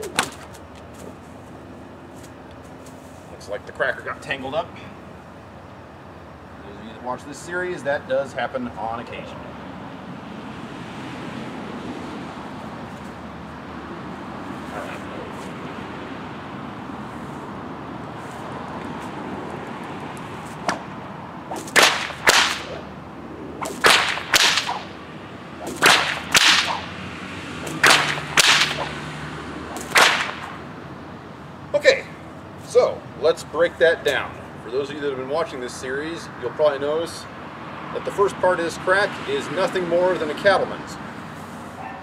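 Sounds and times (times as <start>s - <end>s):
bullwhip cracking: 0.0s - 0.6s, 20.4s - 20.9s, 21.5s - 23.0s, 23.6s - 25.0s, 25.6s - 27.0s, 27.6s - 29.1s, 29.7s - 30.6s
steady background hum: 0.0s - 42.0s.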